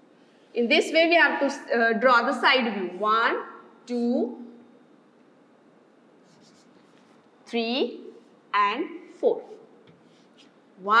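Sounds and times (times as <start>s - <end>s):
chalk scratching on blackboard: 6.2s - 7.3s, 8.0s - 8.4s, 9.4s - 10.6s.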